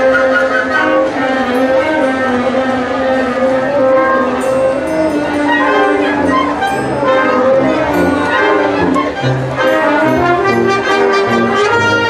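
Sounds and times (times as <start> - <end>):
wind band playing long held notes: 0.0 - 12.0.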